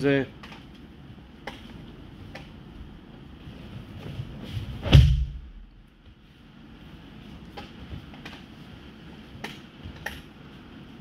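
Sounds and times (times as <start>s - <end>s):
bare feet shuffling on mat: 3.3s - 10.0s
body thudding onto mats: 4.5s - 5.6s.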